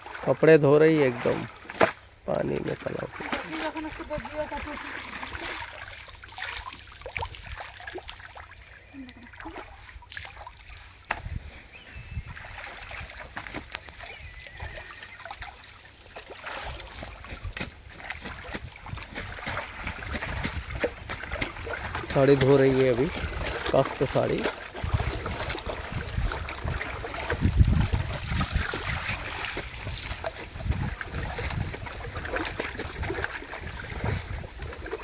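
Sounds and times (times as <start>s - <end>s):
water splashing and trickling: 0.0s - 35.0s.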